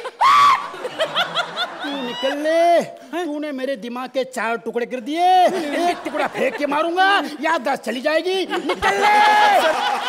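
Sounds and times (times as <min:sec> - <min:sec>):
person laughing: 0:08.5 - 0:10.0.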